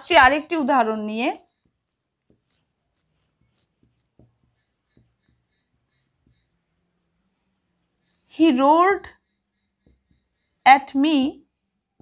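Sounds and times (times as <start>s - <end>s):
marker squeaking on whiteboard: 0.0s - 12.0s.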